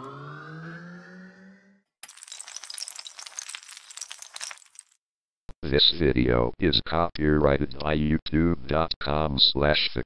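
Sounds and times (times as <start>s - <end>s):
rising synthesized tone: 0.0s - 1.8s.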